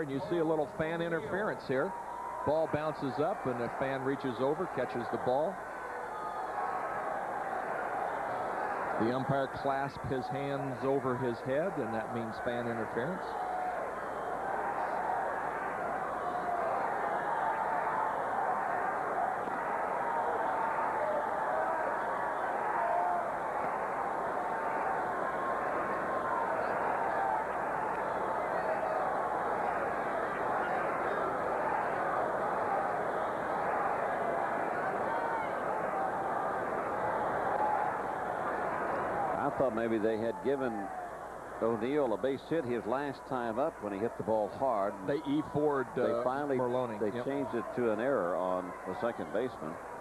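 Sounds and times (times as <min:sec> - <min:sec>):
murmur of crowd voices: 0:00.0 - 0:50.0.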